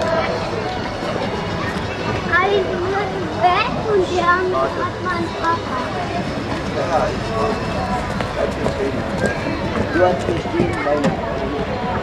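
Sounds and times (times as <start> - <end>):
outdoor background noise: 0.0 - 12.0
people talking indistinctly: 0.0 - 12.0.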